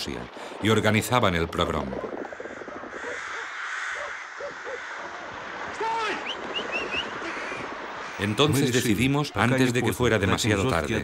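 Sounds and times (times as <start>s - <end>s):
rooks cawing: 2.1s - 8.6s.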